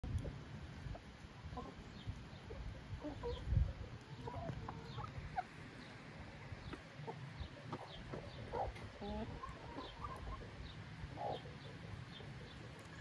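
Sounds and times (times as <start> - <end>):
hens clucking: 0.9 - 13.0.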